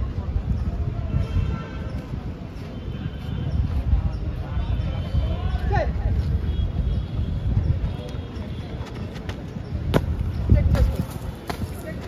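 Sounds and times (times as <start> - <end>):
running footsteps on dirt: 6.1 - 12.0.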